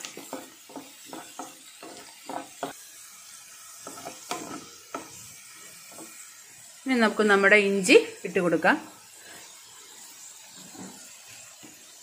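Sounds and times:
wooden spatula scraping a pan: 0:00.0 - 0:02.8, 0:03.8 - 0:06.2, 0:10.5 - 0:11.8
oil sizzling in a pan: 0:00.0 - 0:12.0.

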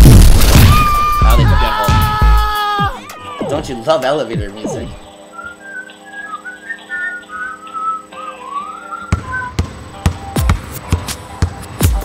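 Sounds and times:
whistle-like hold music melody: 0:05.3 - 0:09.6.

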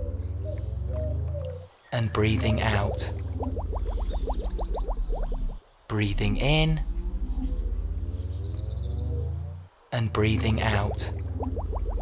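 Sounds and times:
cartoon bubble bloops: 0:03.2 - 0:05.6, 0:11.2 - 0:12.0
low music drone: 0:06.1 - 0:09.7.

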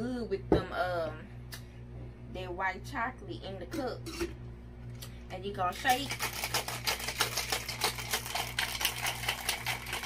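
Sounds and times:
ice rattling in cocktail shaker: 0:05.8 - 0:10.0.

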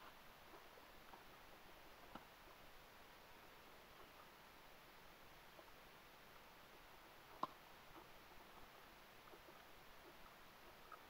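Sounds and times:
faint room hiss: 0:00.0 - 0:11.0
soft ticks: 0:02.0 - 0:02.6, 0:07.3 - 0:11.0.

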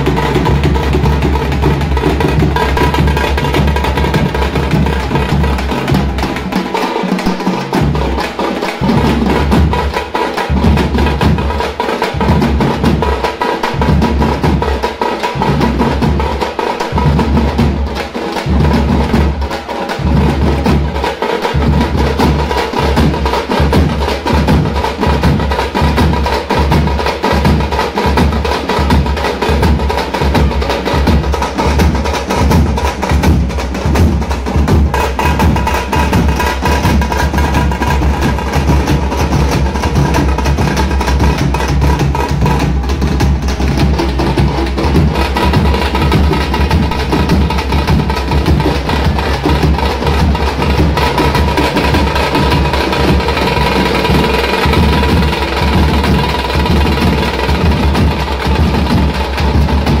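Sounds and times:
frame drums beaten with sticks: 0:00.0 - 1:00.0.

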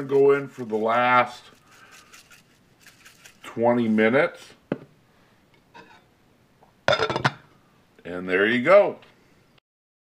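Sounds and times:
glass lid clinking on pot: 0:06.9 - 0:07.4.

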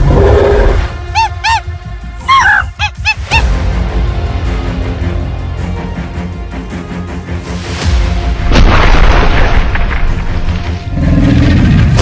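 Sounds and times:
background music: 0:00.0 - 0:12.0
dinosaur honking calls: 0:01.1 - 0:03.4.

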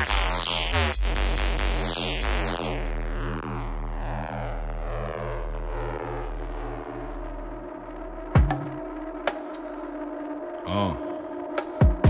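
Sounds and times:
pulsing buzzing synth bass drone: 0:00.0 - 0:12.0.

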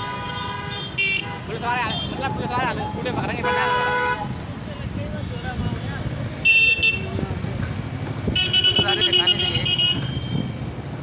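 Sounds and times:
vehicle horns honking: 0:00.0 - 0:02.4, 0:03.4 - 0:04.4, 0:06.4 - 0:07.2, 0:08.3 - 0:10.5
road rumble: 0:00.0 - 0:11.0.

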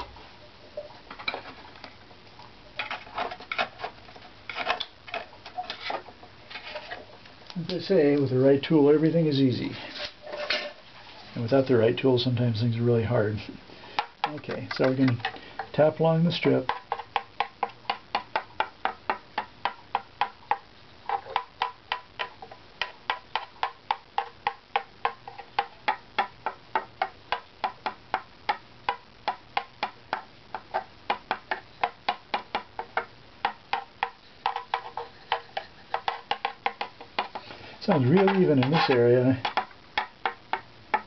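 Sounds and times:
stick tapping wooden plate: 0:13.9 - 0:41.0.

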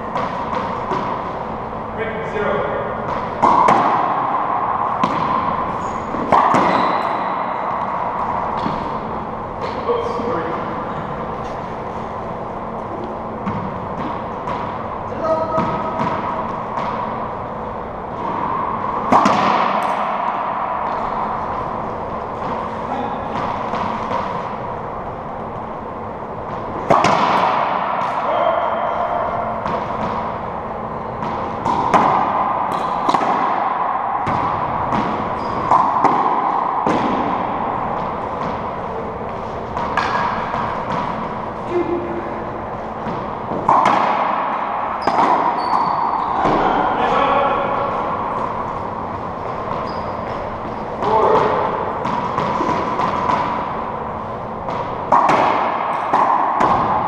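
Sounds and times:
racquetball hits echoing: 0:00.0 - 0:57.0.

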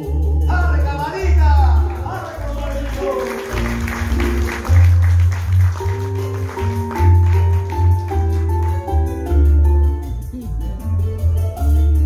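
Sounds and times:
keyboard music: 0:00.6 - 0:12.0.

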